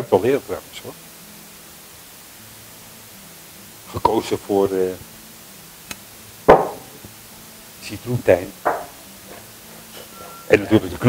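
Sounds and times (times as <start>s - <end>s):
glass jar knocking on wooden worktop: 6.5s - 6.9s, 8.6s - 9.0s.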